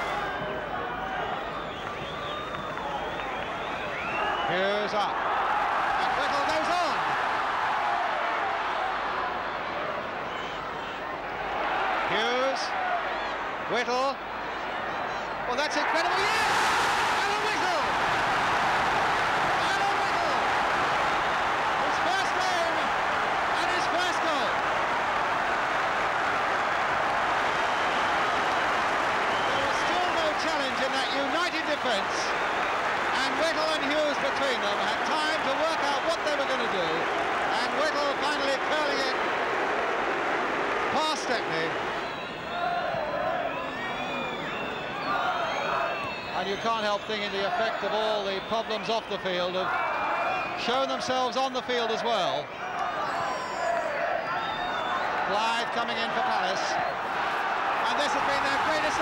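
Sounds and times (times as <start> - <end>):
stadium crowd shouting and chanting: 0.0 - 59.0.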